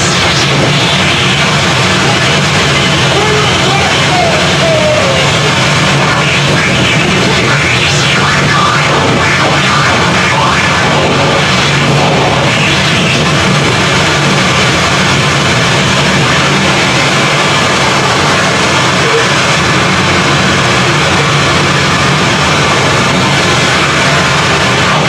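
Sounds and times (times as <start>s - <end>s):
harsh noise music: 0.0s - 25.0s.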